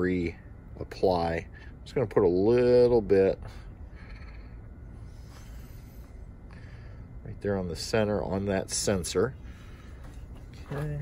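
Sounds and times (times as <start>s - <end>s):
low background rumble: 0.0s - 11.0s.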